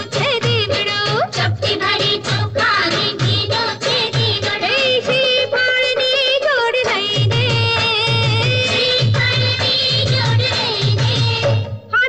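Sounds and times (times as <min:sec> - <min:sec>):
backing music: 0:00.0 - 0:12.0
woman singing: 0:00.0 - 0:12.0.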